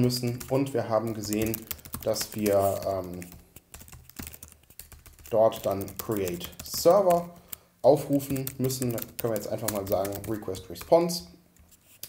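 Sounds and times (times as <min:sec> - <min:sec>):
computer keyboard keys clicking: 0:00.2 - 0:11.0.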